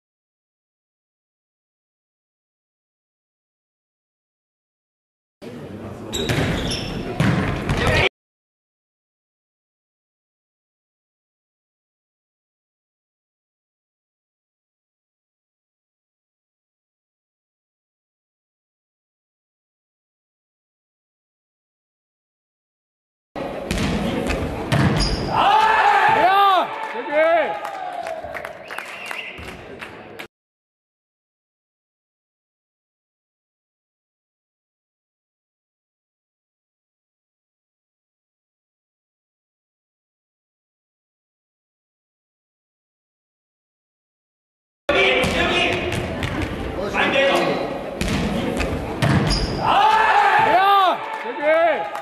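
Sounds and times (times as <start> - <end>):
ball hits echoing in hall: 6.1 - 8.1, 23.5 - 26.3, 44.9 - 50.6
ball bouncing and struck: 6.2 - 8.1, 23.7 - 25.3, 48.0 - 49.6
people shouting: 25.3 - 28.2, 49.6 - 52.0.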